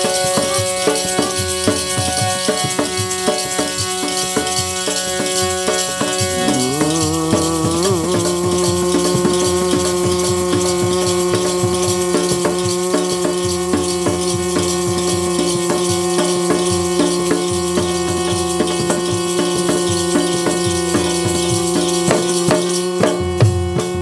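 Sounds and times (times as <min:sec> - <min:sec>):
shaken rattle: 0:00.0 - 0:23.2
dholak drum beat: 0:00.0 - 0:24.0
harmonium note: 0:00.0 - 0:24.0.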